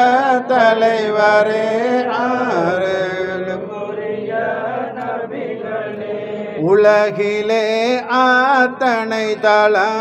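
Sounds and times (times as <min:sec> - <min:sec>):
men chanting a devotional song: 0:00.0 - 0:10.0.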